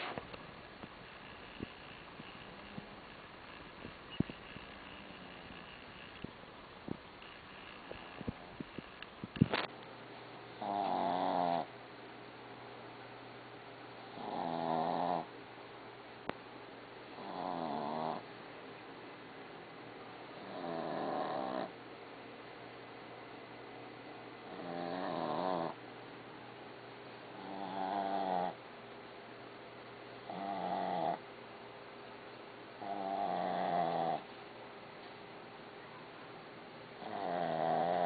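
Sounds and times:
dog snoring: 0:01.1 - 0:06.2, 0:10.6 - 0:11.7, 0:14.0 - 0:15.3, 0:17.2 - 0:18.3, 0:20.3 - 0:21.8, 0:24.5 - 0:25.8, 0:27.3 - 0:28.6, 0:30.2 - 0:31.2, 0:32.8 - 0:34.3, 0:37.0 - 0:38.0.

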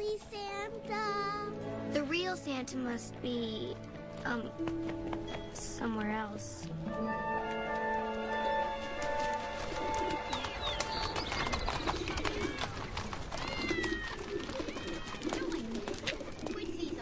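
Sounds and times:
pigeons cooing: 0:09.2 - 0:17.0.

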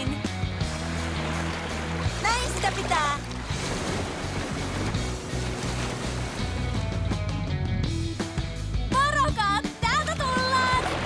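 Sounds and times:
water noise: 0:00.0 - 0:08.5, 0:09.8 - 0:11.0
background music with bass: 0:00.0 - 0:11.0.

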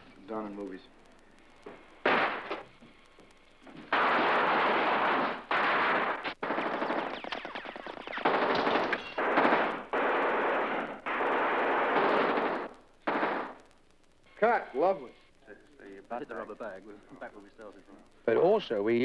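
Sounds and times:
machine-gun fire: 0:02.0 - 0:02.6, 0:03.8 - 0:13.6.

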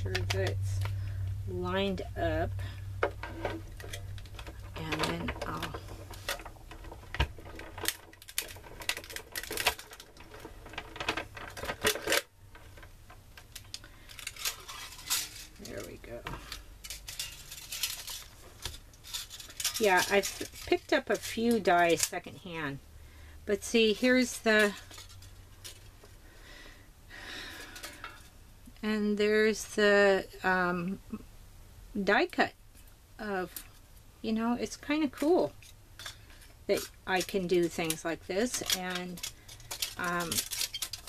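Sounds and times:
aluminium sheet crinkling: 0:00.0 - 0:22.8, 0:23.5 - 0:26.2, 0:32.3 - 0:41.0
aluminium sheet rustle: 0:00.0 - 0:22.8, 0:23.5 - 0:26.2, 0:32.1 - 0:41.0.

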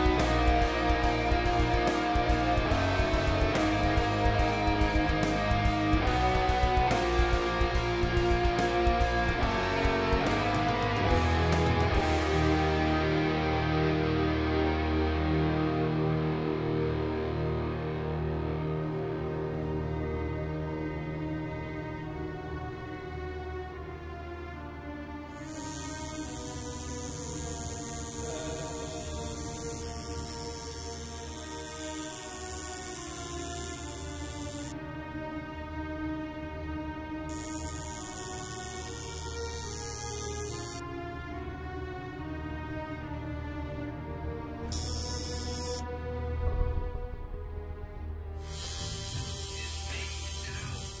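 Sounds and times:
tattoo machine buzzing: 0:00.0 - 0:11.8, 0:25.3 - 0:34.8, 0:37.3 - 0:40.8, 0:44.7 - 0:45.8, 0:48.4 - 0:51.0
background music: 0:00.0 - 0:51.0.

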